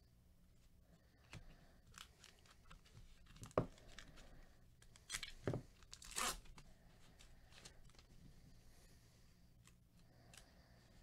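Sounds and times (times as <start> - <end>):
foil wrapper tearing and crinkling: 4.9 - 6.6.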